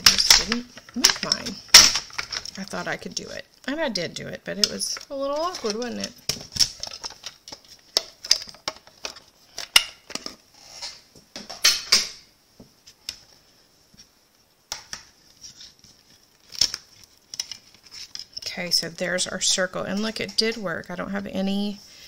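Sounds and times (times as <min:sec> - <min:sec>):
plastic plates clicking and tapping: 0:14.7 - 0:15.2.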